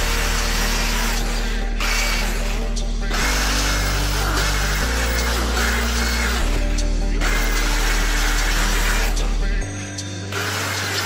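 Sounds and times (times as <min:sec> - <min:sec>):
background music with bass line: 0:00.0 - 0:11.0
power grinder grinding steel: 0:00.0 - 0:11.0.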